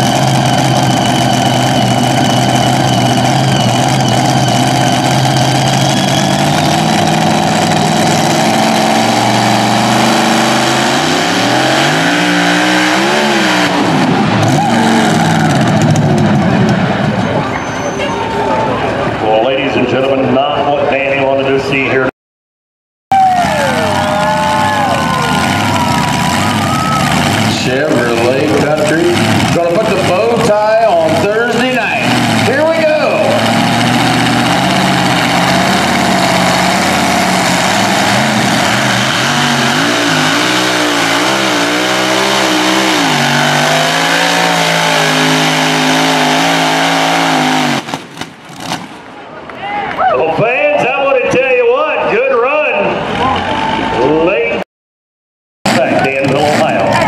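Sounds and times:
truck engine revving under load: 0.0 - 18.0, 23.3 - 49.2
man speaking over loudspeaker: 19.2 - 22.1, 27.5 - 33.4, 50.1 - 53.4, 54.0 - 54.6, 55.7 - 57.0.

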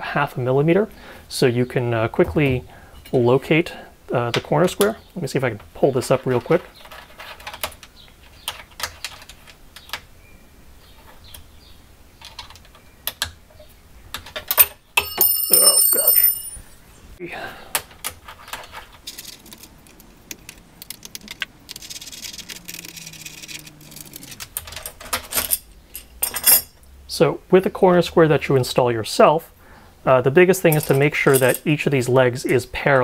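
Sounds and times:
light metal clinks: 14.6 - 16.8, 30.7 - 31.7
bright metallic ringing: 15.0 - 16.8.

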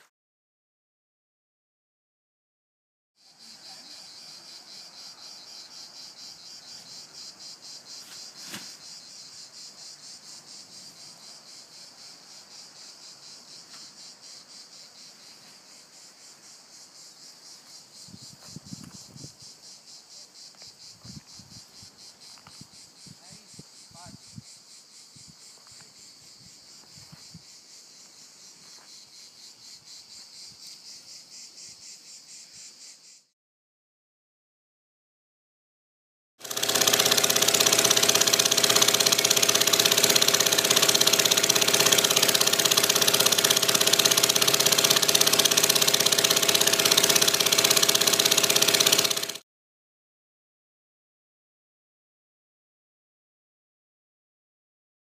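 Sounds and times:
insects chirping: 3.2 - 33.3.

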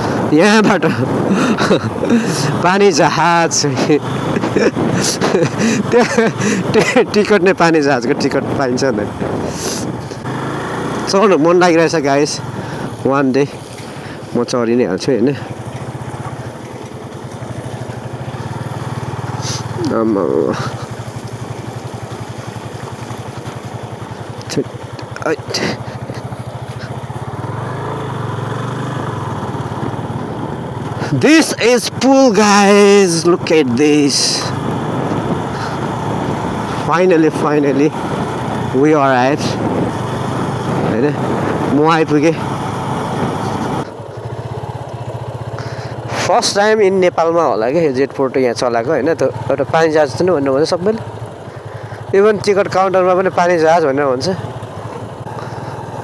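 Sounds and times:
motorcycle engine running: 0.0 - 56.0
wind noise on microphone: 4.3 - 5.4, 8.0 - 10.2, 34.6 - 36.8, 39.4 - 41.8
wind on microphone: 4.4 - 5.3, 39.4 - 41.8.

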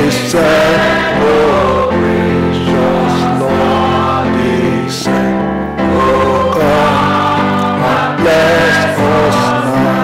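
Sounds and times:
man singing into microphone: 0.0 - 5.3, 5.9 - 10.0
group singing a hymn: 0.0 - 10.0.

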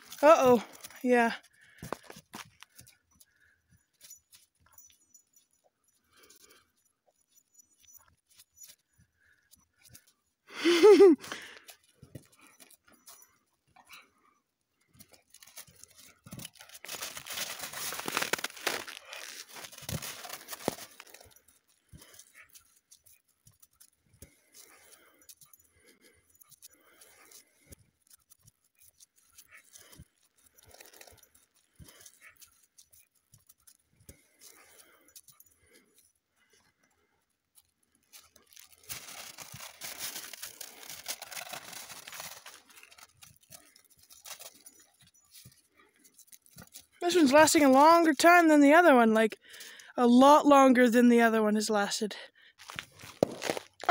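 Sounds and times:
dog running in crusty snow: 15.1 - 22.8, 38.2 - 45.6, 52.6 - 53.9.

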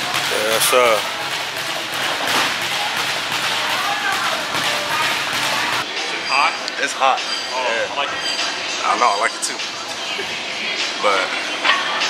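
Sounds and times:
steady room noise: 0.0 - 12.0.

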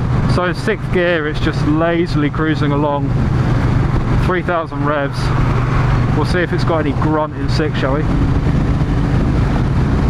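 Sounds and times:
heavy wind rush: 0.0 - 10.0.

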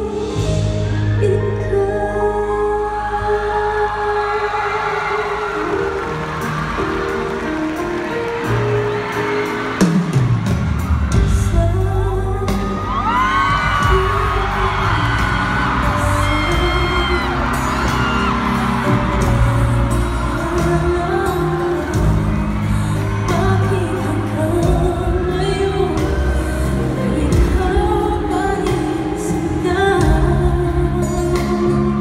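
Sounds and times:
live pop ballad with female vocal: 0.0 - 32.0
audience whooping: 4.2 - 11.4, 12.6 - 24.6.

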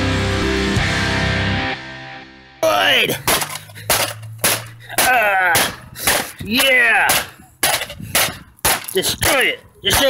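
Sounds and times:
hammer striking laptop screen: 3.2 - 6.3.

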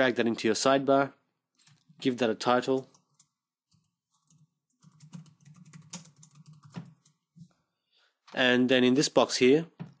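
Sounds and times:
typing on computer keyboard: 2.8 - 7.2.

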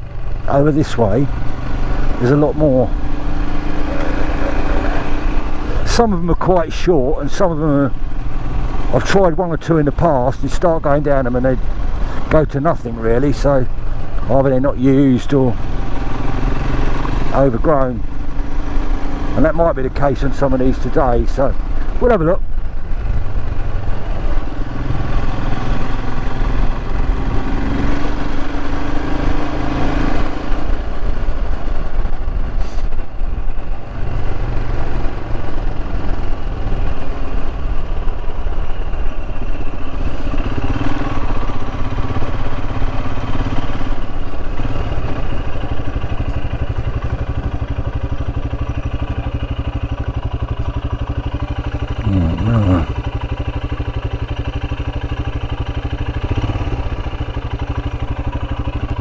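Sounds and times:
motorcycle engine running: 0.0 - 59.0.

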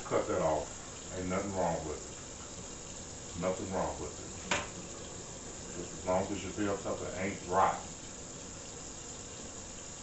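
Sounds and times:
tap running into sink: 4.2 - 7.7.

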